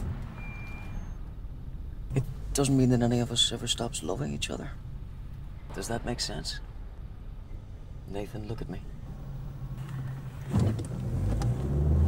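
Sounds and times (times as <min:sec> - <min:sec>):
faint high-pitched tone: 0:00.3 - 0:01.3
car cabin rumble: 0:07.5 - 0:12.0.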